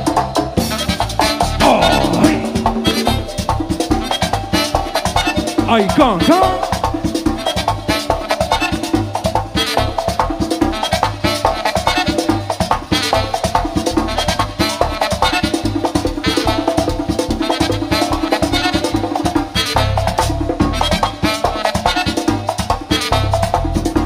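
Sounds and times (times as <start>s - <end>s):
accordion and saxophone band: 0.0s - 24.0s
driving drum percussion: 0.0s - 24.0s.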